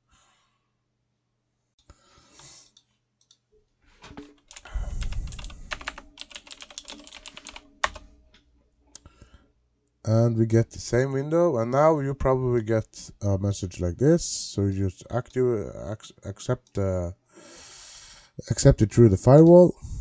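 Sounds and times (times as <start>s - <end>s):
typing on computer keyboard: 4.2s - 8.0s.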